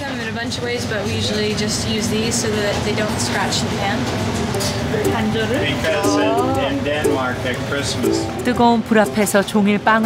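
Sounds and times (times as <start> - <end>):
woman talking: 0.0 - 6.7, 8.4 - 10.0
steady background noise: 0.0 - 10.0.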